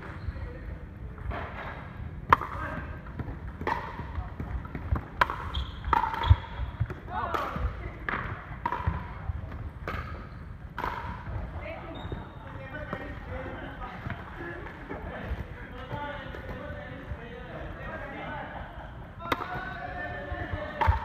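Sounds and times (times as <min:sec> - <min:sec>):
ball bouncing on wooden court: 0:01.2 - 0:13.3, 0:20.4 - 0:21.0
paddles hitting plastic ball: 0:02.2 - 0:11.4, 0:19.3 - 0:21.0.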